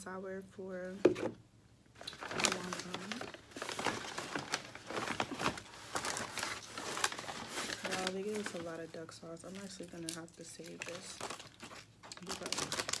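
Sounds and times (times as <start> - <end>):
takeout bags crinkling: 2.0 - 13.0.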